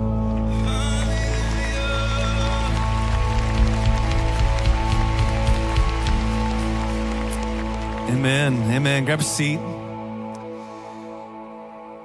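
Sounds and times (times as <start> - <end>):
congregation applauding: 0.1 - 9.9.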